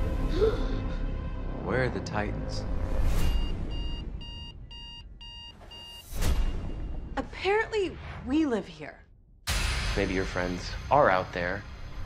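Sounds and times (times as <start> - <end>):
heavy hit: 9.5 - 12.0.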